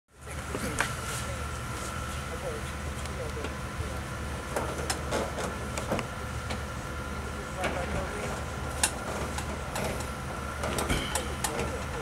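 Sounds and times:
engine idling hum: 0.1 - 12.0
distant voices: 0.2 - 12.0.

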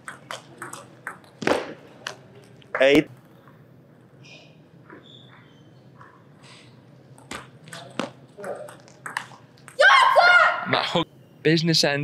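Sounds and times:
table tennis ball clicking: 7.2 - 9.8.

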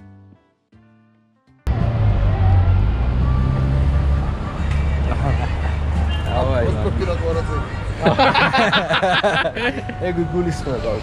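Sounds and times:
low vehicle rumble: 1.7 - 8.0.

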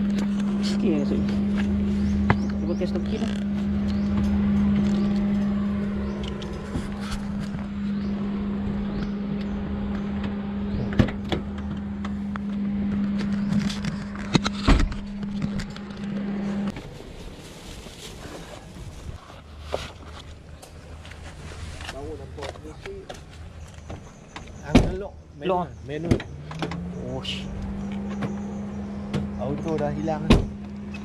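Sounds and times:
small car humming: 0.0 - 31.0.

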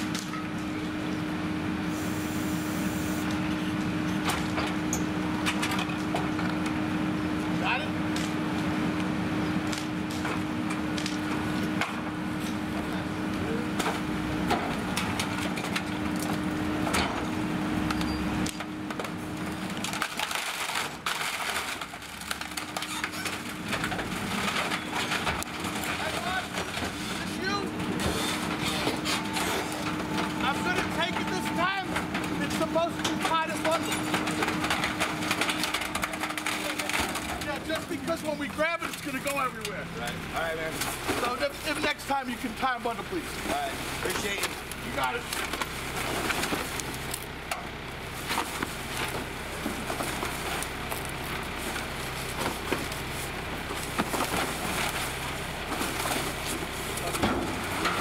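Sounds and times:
garbage truck humming: 0.0 - 58.0
wooden pallets cracking and splintering: 13.7 - 17.4, 18.4 - 39.8, 40.7 - 58.0.

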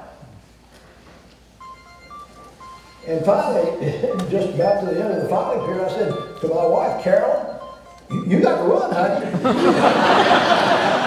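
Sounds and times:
electronic beeps: 1.6 - 9.2.

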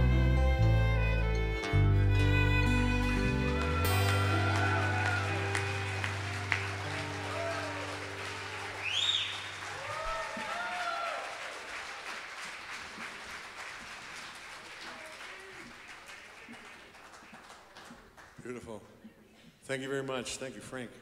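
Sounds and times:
band chord ringing out: 0.0 - 9.0
crowd cheering: 2.0 - 18.0
audience applauding: 2.4 - 18.8
whistle from crowd: 8.8 - 9.5.

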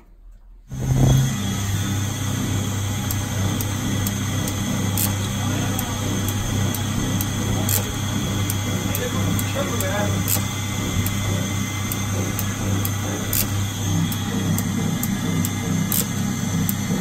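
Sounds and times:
cutting machine humming: 0.7 - 17.0.

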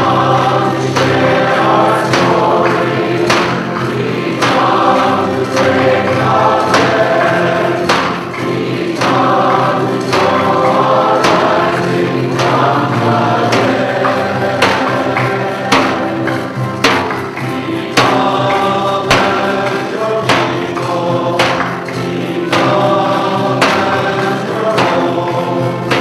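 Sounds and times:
choir and congregation singing: 0.0 - 26.0
steady percussion beat: 0.0 - 26.0.

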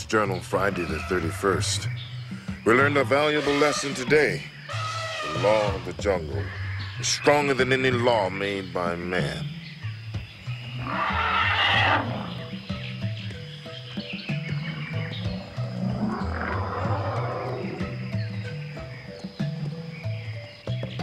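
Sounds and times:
theme music with stepping bass: 0.0 - 21.0
harsh wild animal calls: 0.6 - 7.1, 10.2 - 20.8.

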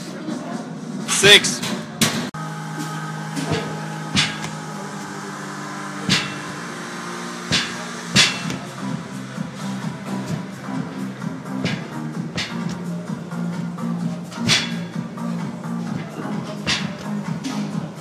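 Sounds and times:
background music with steady beat: 0.6 - 18.0.

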